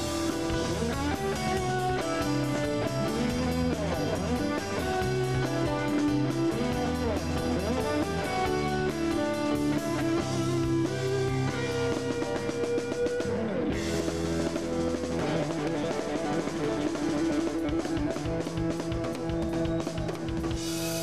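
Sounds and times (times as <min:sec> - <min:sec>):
drum kit: 0:00.0 - 0:21.0
electric guitar: 0:00.0 - 0:21.0.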